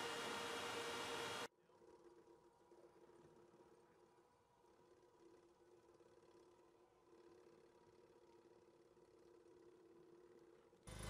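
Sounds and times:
steady hiss: 0.0s - 1.5s
faint hum: 0.0s - 11.0s.

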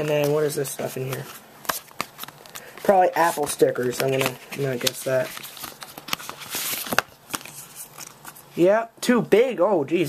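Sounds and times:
paper packaging rustling: 0.0s - 8.7s.

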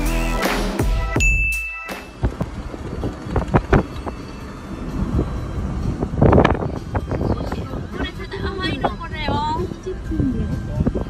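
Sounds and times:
music: 0.0s - 2.4s, 3.4s - 11.0s
car road and wind noise: 1.0s - 11.0s
ding chime: 1.2s - 2.2s.

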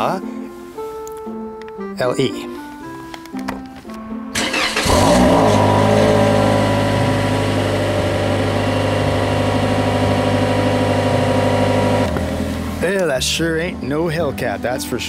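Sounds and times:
car engine cranking: 4.3s - 13.0s
car engine fast idle: 4.4s - 12.8s.

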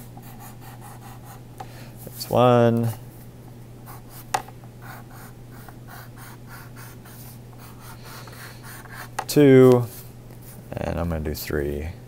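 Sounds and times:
pencil scratching on paper: 0.2s - 1.4s, 3.9s - 9.3s.

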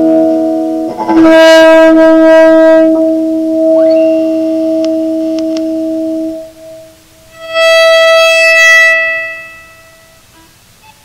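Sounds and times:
bowed electric guitar note: 0.0s - 10.2s.

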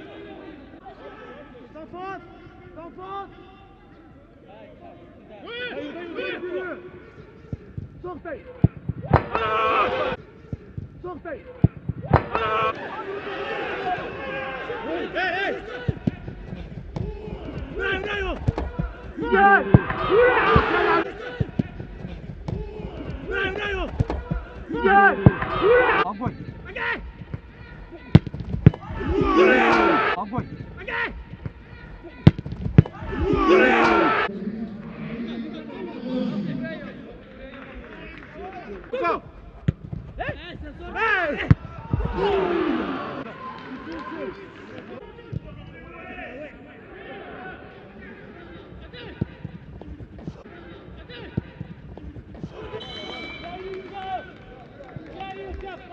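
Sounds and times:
faint players shouting: 12.1s - 37.0s, 40.2s - 47.7s
football being kicked: 39.6s - 40.5s, 41.4s - 42.4s.

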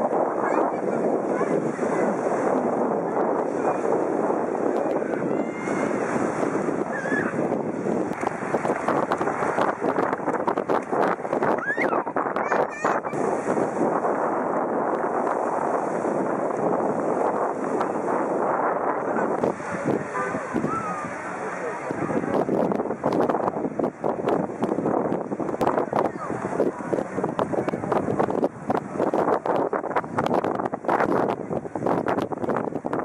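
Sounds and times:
crowd of bathers talking: 0.0s - 10.1s, 15.4s - 24.0s, 25.3s - 30.1s
small waves washing in: 0.0s - 33.0s.

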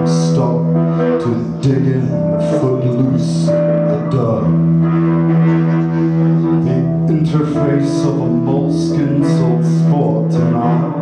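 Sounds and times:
electric guitar drone: 0.0s - 11.0s.

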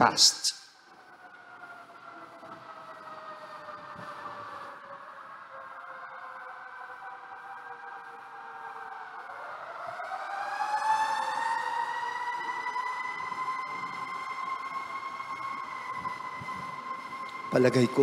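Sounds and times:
siren wailing: 0.8s - 18.0s.

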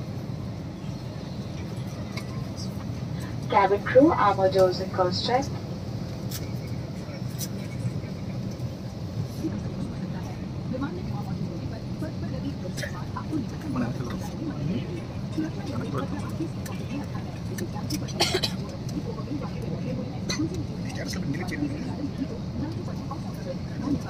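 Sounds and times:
airliner cabin hum: 0.0s - 24.0s
faint indistinct voices: 0.0s - 24.0s.

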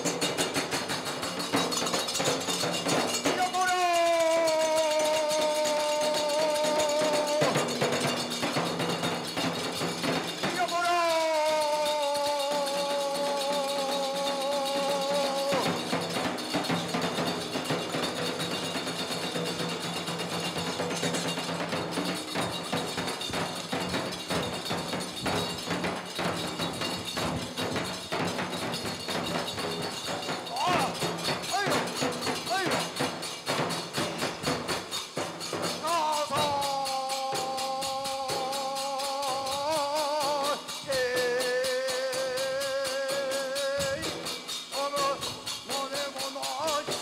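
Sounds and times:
hand cymbals: 0.0s - 47.0s
taiko drum: 0.0s - 47.0s
person chanting: 3.2s - 17.8s, 30.5s - 33.0s, 35.6s - 47.0s.

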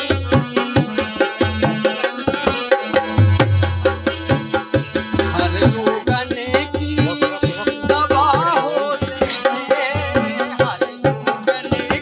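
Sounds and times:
barrel drum played by hand: 0.0s - 12.0s.

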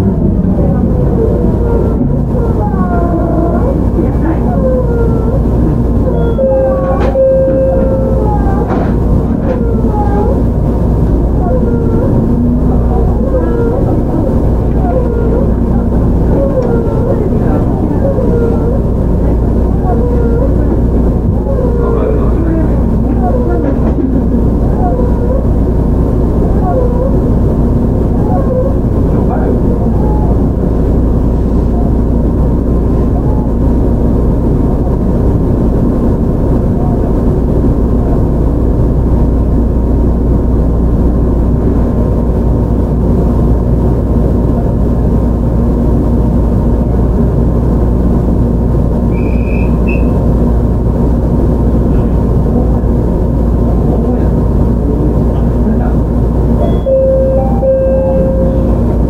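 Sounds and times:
voices: 0.0s - 33.7s, 51.8s - 59.0s
steady train hum: 0.0s - 59.0s
train wheels rumbling on rail: 0.0s - 59.0s.

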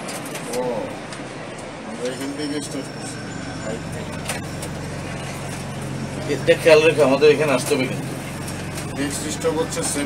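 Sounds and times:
bus engine humming: 0.0s - 10.0s
street traffic: 0.0s - 10.0s.

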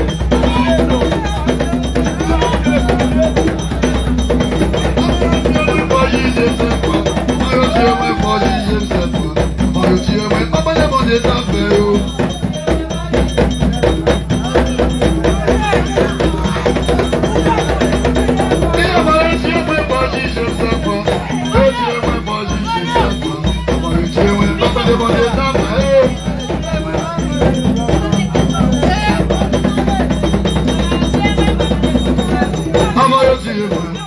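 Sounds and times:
ensemble of drums in fast rhythm: 0.0s - 34.0s
group singing: 0.0s - 34.0s.

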